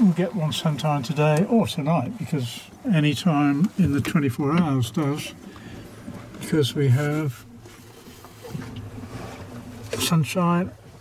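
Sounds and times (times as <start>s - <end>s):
low rush inside sailing yacht cabin: 0.0s - 11.0s.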